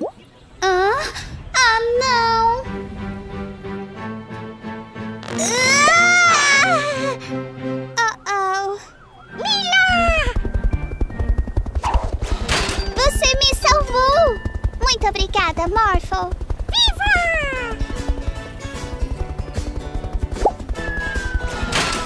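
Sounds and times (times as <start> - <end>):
background music: 0.5 - 15.0, 17.3 - 22.0
cartoon helicopter rotor chopping: 5.2 - 7.2, 8.0 - 22.0.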